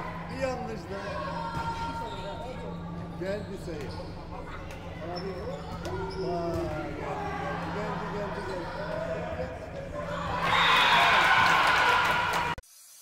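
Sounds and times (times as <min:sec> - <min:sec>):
steady low hum: 0:00.0 - 0:11.2.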